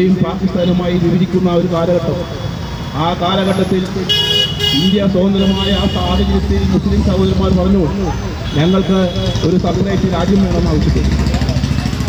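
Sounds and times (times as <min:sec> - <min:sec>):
low traffic rumble: 0:00.0 - 0:12.0
man's amplified speech: 0:00.0 - 0:12.0
vehicle horn: 0:04.1 - 0:06.5, 0:08.4 - 0:09.6.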